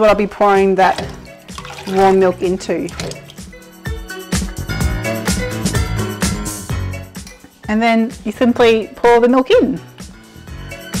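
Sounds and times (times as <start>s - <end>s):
background music with regular beat: 0.6s - 11.0s.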